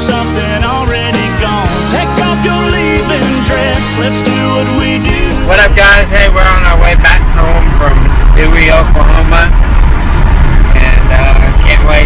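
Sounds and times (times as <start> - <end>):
car road and engine rumble: 0.0 - 12.0
man talking: 5.3 - 9.5, 10.7 - 12.0.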